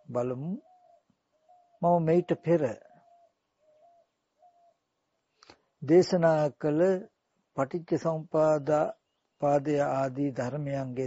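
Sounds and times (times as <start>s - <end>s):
faint bird call: 0.0s - 5.6s.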